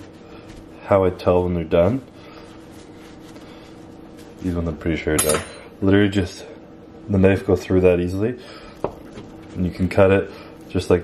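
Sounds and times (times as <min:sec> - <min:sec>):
paper towel rustling: 0:00.0 - 0:05.2
low room hum: 0:00.0 - 0:11.0.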